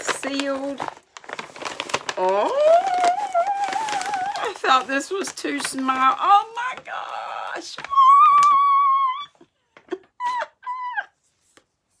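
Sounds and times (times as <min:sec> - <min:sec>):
woman squealing: 0:02.2 - 0:04.6, 0:07.9 - 0:11.2.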